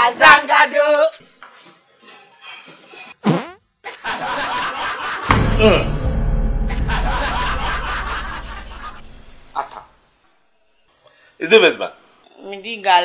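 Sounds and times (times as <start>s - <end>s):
long low fart: 3.2s - 3.6s
background music: 5.2s - 9.6s.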